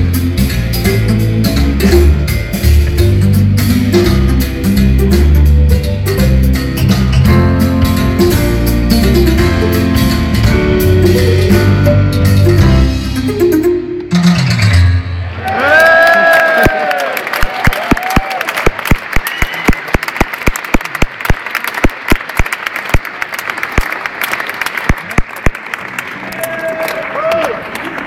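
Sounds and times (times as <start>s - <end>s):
music: 0.0s - 15.4s
audience whooping: 15.3s - 20.2s, 26.2s - 28.0s
audience applauding: 15.4s - 28.0s.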